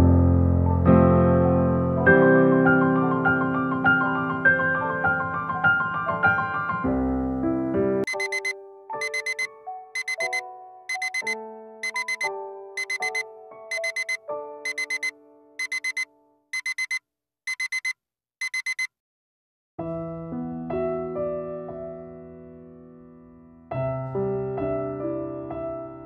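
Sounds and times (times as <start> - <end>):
soft piano music: 0.0 - 11.8, 19.8 - 26.0
digital alarm beeping: 8.1 - 16.0, 16.6 - 18.9.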